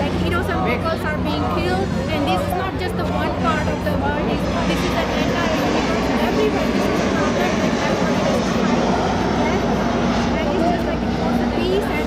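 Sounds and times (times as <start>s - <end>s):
crowd chatter: 0.0s - 12.0s
woman speaking: 0.0s - 12.0s.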